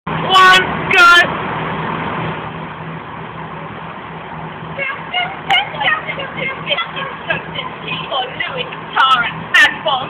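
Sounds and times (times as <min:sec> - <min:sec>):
low hum of vehicle noise: 0:00.1 - 0:10.0.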